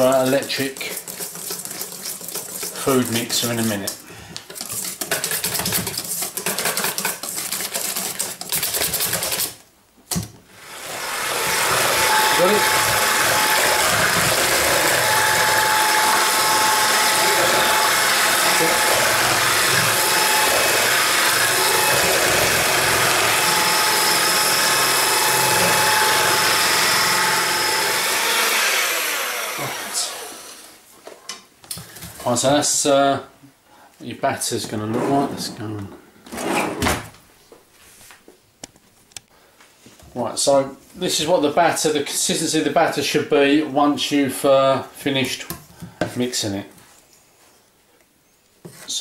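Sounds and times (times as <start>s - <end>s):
whisk beating batter in steel bowl: 0.0s - 9.6s, 11.4s - 27.6s
electric hand mixer running: 10.6s - 30.8s.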